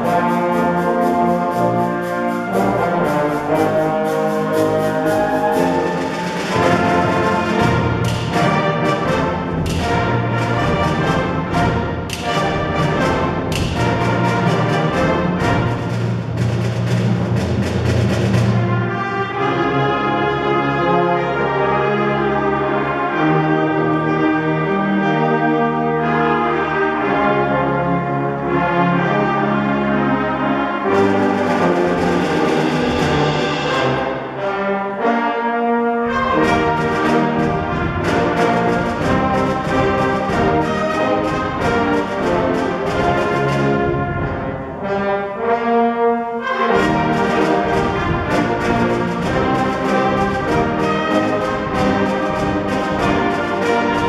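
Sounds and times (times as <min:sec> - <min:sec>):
rhythmic percussion beat: 0:00.0 - 0:19.0, 0:30.9 - 0:34.6, 0:36.1 - 0:44.6, 0:46.7 - 0:54.0
brass band playing: 0:00.0 - 0:54.0.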